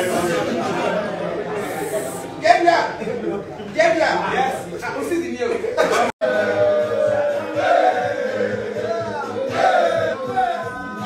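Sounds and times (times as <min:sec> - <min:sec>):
voices singing together: 0:06.0 - 0:11.0
pulsing beat: 0:06.2 - 0:11.0.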